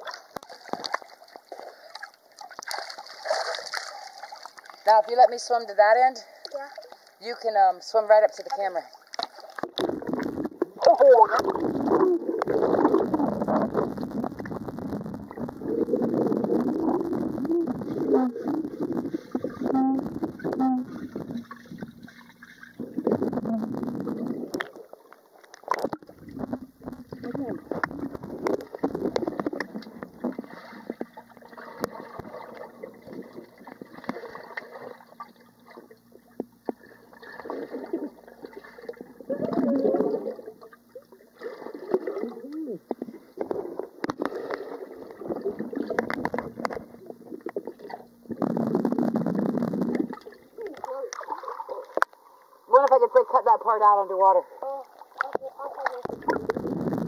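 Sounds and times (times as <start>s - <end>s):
muffled underwater splashing: 0.0s - 57.0s.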